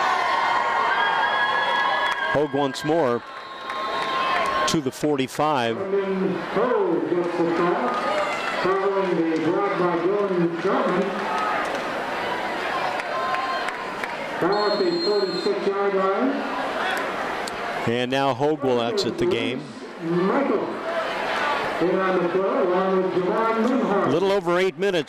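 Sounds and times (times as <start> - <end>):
stadium crowd noise: 0.0 - 25.0.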